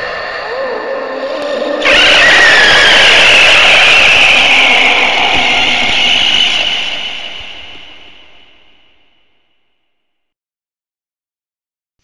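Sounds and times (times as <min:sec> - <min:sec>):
harsh noise effect: 0:00.0 - 0:09.2.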